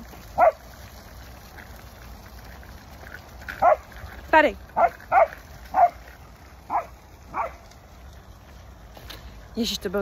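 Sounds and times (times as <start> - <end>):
dog barking: 0.4 - 0.6, 4.8 - 6.0, 6.7 - 7.6.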